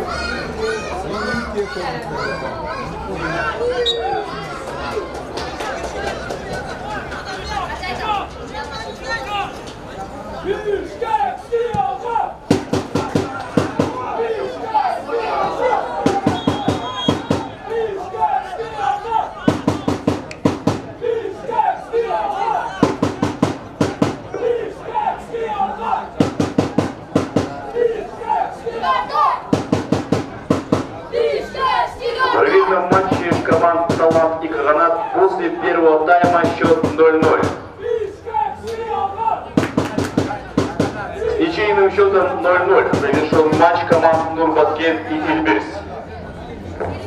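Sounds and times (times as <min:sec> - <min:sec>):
voices: 0:00.0 - 0:47.0
drum beaten in quick runs: 0:12.5 - 0:14.1, 0:16.0 - 0:17.6, 0:19.4 - 0:20.9, 0:22.8 - 0:24.3, 0:26.2 - 0:27.6, 0:29.4 - 0:31.0, 0:32.9 - 0:34.4, 0:36.2 - 0:37.7, 0:39.5 - 0:41.1, 0:42.8 - 0:44.4.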